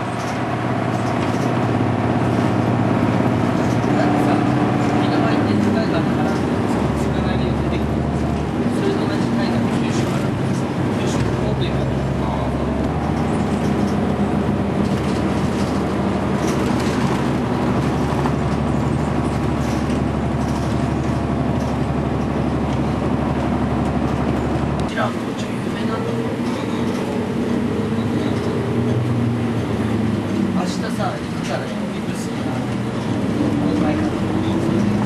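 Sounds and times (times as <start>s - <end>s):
bus engine and road noise: 0.0s - 35.0s.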